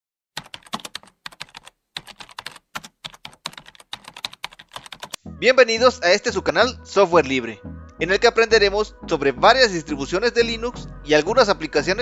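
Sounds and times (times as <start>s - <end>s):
computer keyboard typing: 0.4s - 5.2s.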